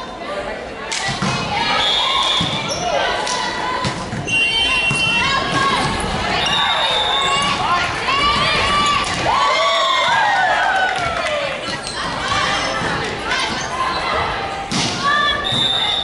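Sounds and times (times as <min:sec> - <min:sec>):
sneakers squeaking: 0:01.3 - 0:03.2, 0:03.8 - 0:09.3, 0:11.6 - 0:16.0.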